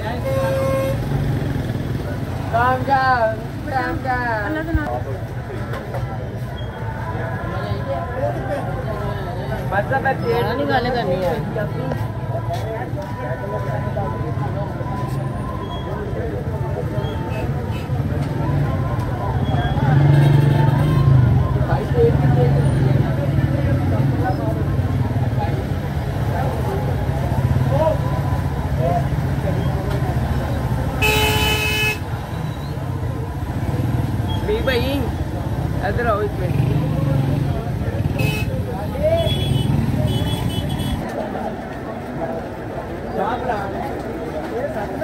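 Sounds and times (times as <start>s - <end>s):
traffic rumble: 0.0s - 45.0s
vehicle horn honking: 0.2s - 1.0s, 31.0s - 32.0s, 38.2s - 38.6s.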